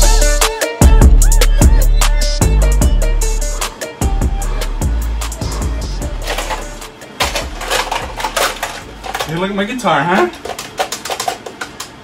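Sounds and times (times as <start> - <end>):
trap beat with deep bass: 0.0 - 6.9
clattering percussive clicks: 6.2 - 9.5, 10.2 - 12.0.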